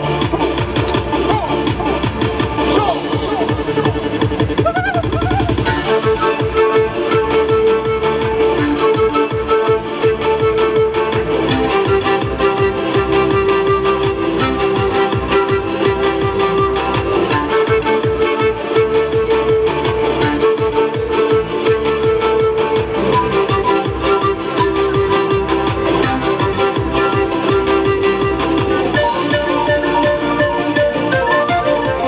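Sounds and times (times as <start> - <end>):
electronic dance beat: 0.0 - 8.0
panpipe melody: 0.0 - 32.0.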